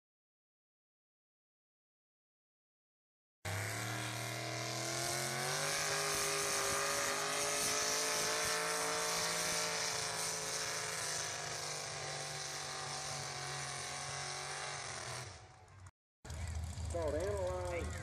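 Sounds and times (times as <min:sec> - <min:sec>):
truck engine revving under load: 0:03.5 - 0:17.2.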